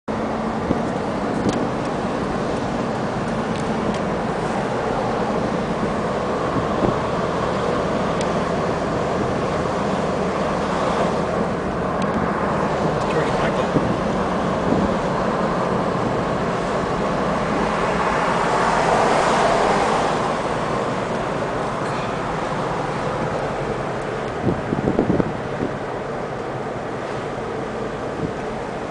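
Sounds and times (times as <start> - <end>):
car road and engine noise: 0.0 - 28.9.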